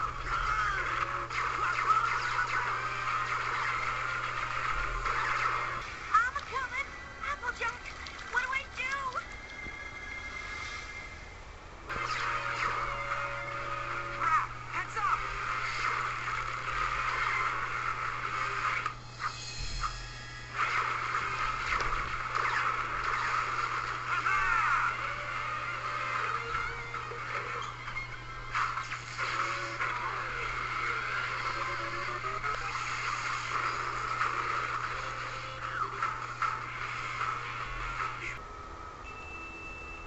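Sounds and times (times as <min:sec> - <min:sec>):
cartoon soundtrack music: 0:00.0 - 0:07.8, 0:20.6 - 0:37.4
steady low hum: 0:00.0 - 0:40.0.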